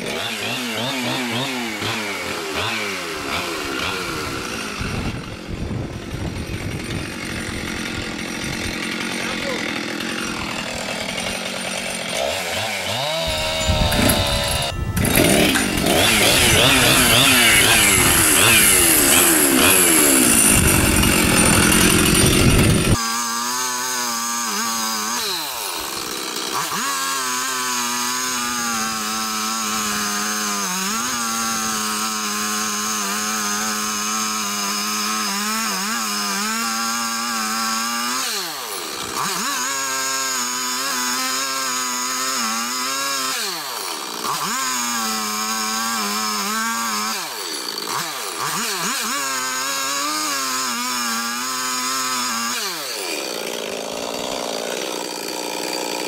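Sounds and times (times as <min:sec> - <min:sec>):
chainsaw cutting into tree trunk: 0:00.0 - 0:56.0.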